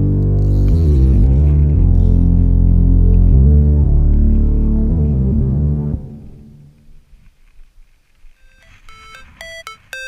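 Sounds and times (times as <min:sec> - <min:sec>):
bite alarm beeping: 0:08.4 - 0:10.0.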